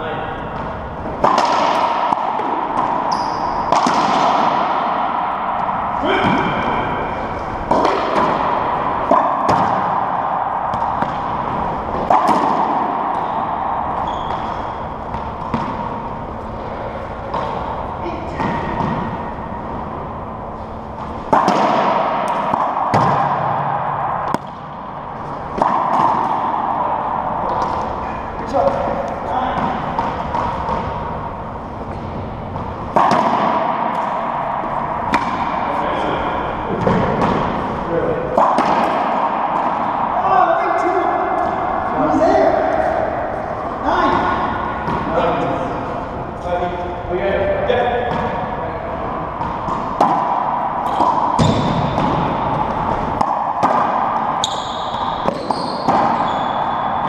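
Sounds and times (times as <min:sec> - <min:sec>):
racquetball hits echoing: 0:00.0 - 0:57.0
shoes squeaking on floor: 0:03.1 - 0:03.7, 0:14.0 - 0:14.7, 0:54.4 - 0:56.7.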